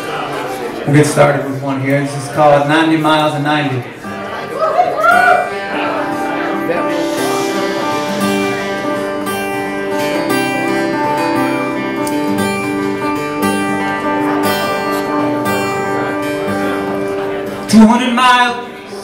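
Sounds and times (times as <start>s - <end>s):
acoustic guitar strumming chords: 2.1s - 19.0s.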